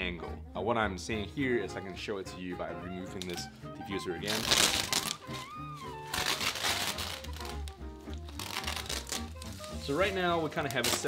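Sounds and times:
background music: 0:00.0 - 0:11.0
nylon fabric rustling: 0:04.2 - 0:11.0
velcro ripping: 0:04.2 - 0:11.0.

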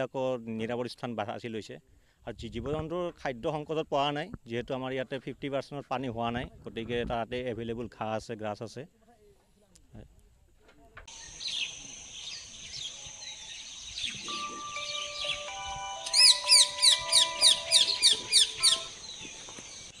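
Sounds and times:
birds chirping: 0:11.1 - 0:20.0
loud descending chirps: 0:14.0 - 0:19.3
soft background music: 0:14.2 - 0:19.0.

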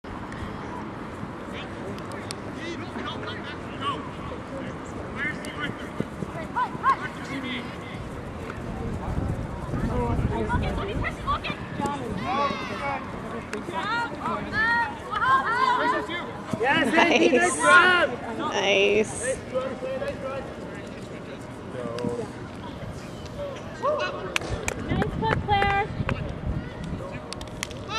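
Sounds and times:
outdoor background noise: 0:00.0 - 0:27.9.

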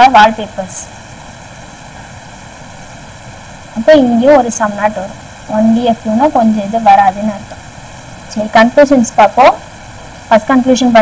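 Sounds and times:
person speaking: 0:00.0 - 0:00.9, 0:03.8 - 0:07.5
background hiss: 0:00.0 - 0:11.0.

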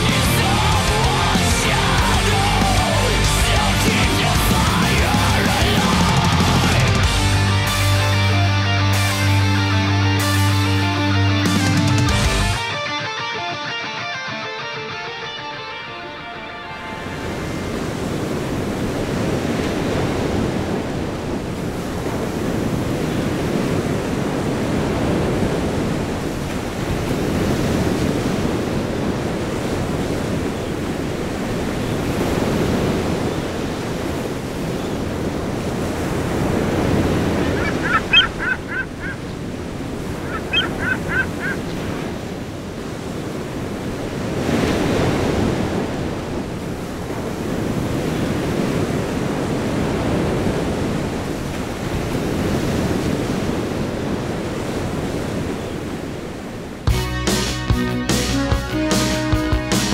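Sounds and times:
ocean surf breaking: 0:00.0 - 0:59.9
gull squawking: 0:37.3 - 0:39.3, 0:40.1 - 0:41.8.

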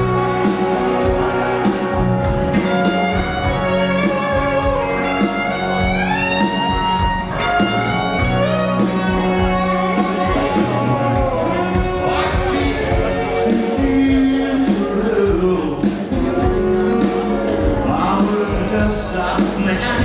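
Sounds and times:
electric guitar lead line: 0:00.0 - 0:20.0
live rock band playing: 0:00.0 - 0:20.0.

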